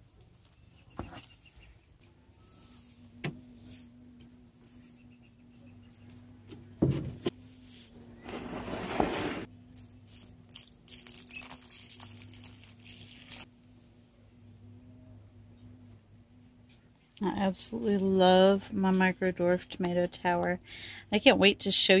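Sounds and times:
water pouring onto soil: 10.1s - 13.5s.

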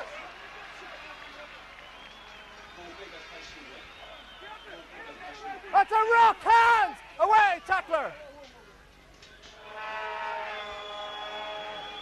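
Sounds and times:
stadium crowd holding a note: 9.5s - 12.0s.

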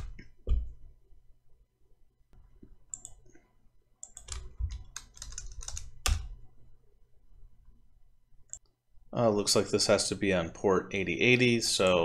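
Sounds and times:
computer keyboard typing: 2.9s - 3.3s, 4.0s - 6.4s.

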